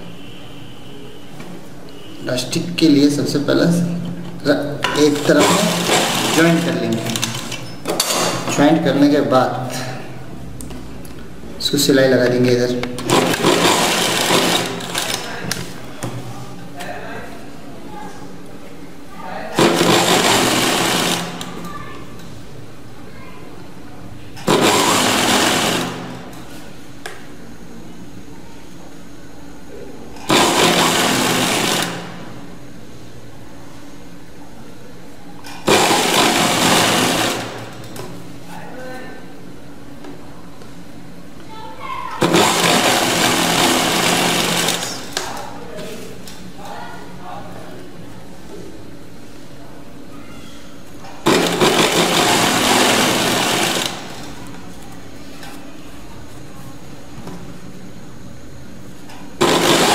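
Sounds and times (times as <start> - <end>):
sewing machine stitching: 5.0 - 7.6, 13.0 - 15.3, 19.6 - 21.5, 24.4 - 26.2, 30.2 - 32.2, 35.6 - 37.8, 42.2 - 45.2, 51.2 - 54.3, 59.4 - 59.9.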